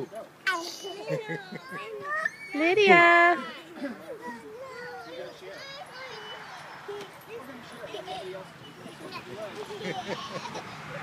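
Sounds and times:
young children babbling: 0.4 - 11.0.

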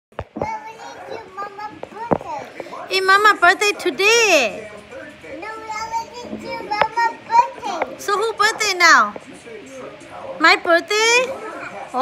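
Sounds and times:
small children's vocal sounds: 0.2 - 2.5.

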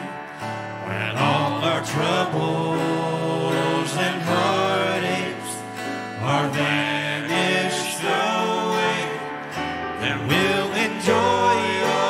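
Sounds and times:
people singing gospel song: 0.0 - 12.0
strummed acoustic guitar: 0.0 - 12.0.

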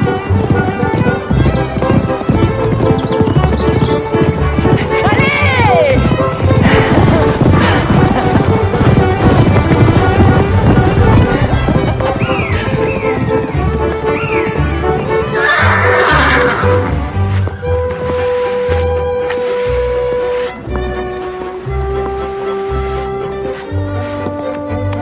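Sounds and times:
background music: 0.0 - 25.0
horses galloping on turf: 0.0 - 25.0
horse whinnying: 14.3 - 17.6.

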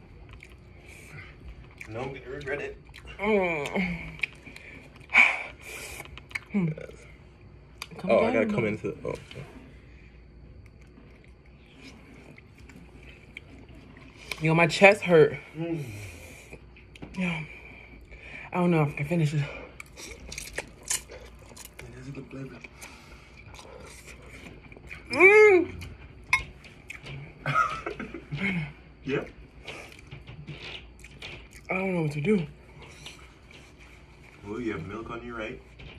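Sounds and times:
low steady hum: 0.0 - 35.9.

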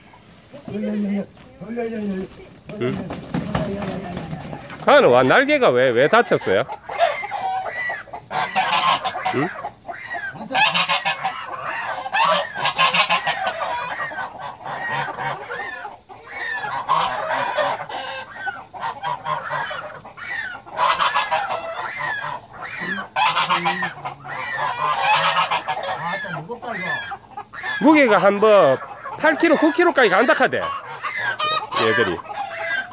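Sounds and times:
goose honking: 0.0 - 32.9.

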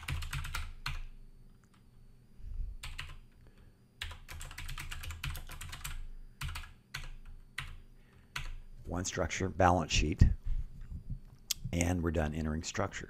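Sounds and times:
typing on computer keyboard: 0.0 - 1.8, 2.8 - 3.3, 4.0 - 8.6.

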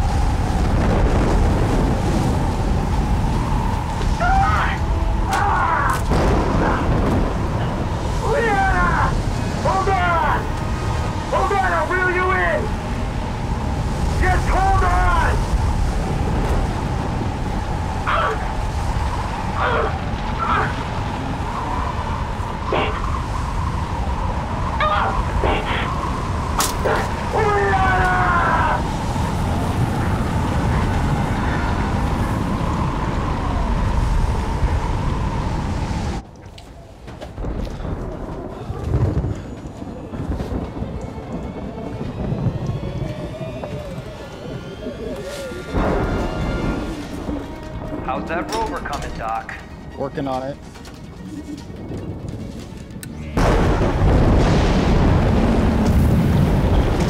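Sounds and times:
loud wind rumble: 0.0 - 57.0
quiet background music: 39.8 - 54.6.

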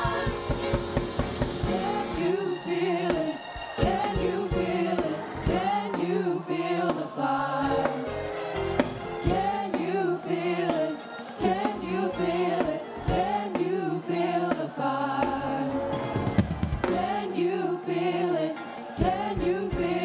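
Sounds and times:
gospel choir singing: 0.0 - 20.0.

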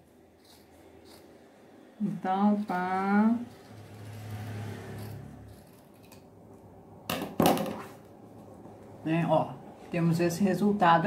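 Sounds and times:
scissors cutting fabric: 0.0 - 1.5, 2.3 - 6.3.

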